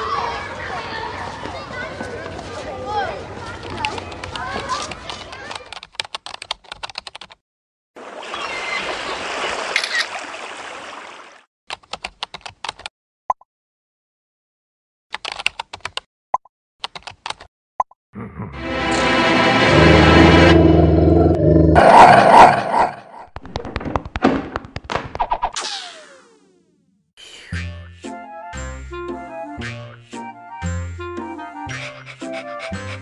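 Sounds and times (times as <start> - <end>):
keyboard typing: 5.3 - 7.4, 11.7 - 12.9, 15.2 - 16.0, 16.8 - 17.5.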